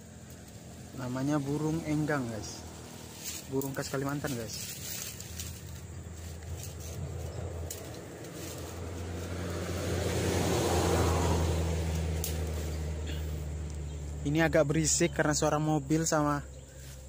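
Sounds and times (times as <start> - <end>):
road traffic hum: 0.0 - 17.0
vehicle passing: 0.0 - 17.0.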